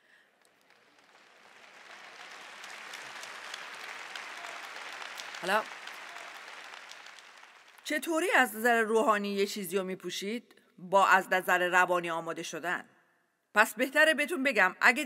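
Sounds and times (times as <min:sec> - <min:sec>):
audience applause: 0:00.0 - 0:08.0.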